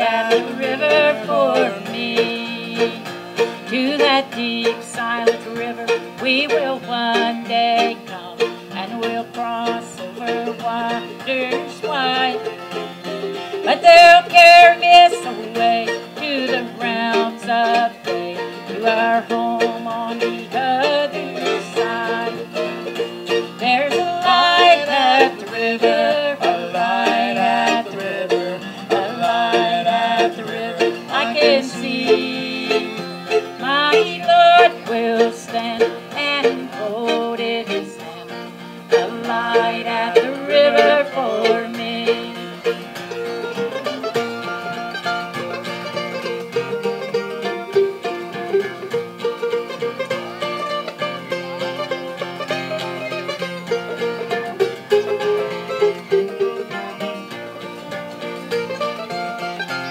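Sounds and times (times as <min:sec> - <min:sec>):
acoustic guitar strumming: 0:00.0 - 0:59.9
mandolin: 0:00.0 - 0:59.9.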